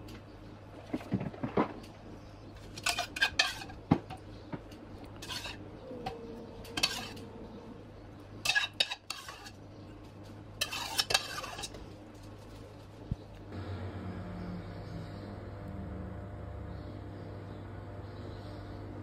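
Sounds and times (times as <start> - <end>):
metal spoon scraping a pot: 2.6 - 3.8, 5.2 - 7.3, 8.4 - 9.6, 10.6 - 11.8.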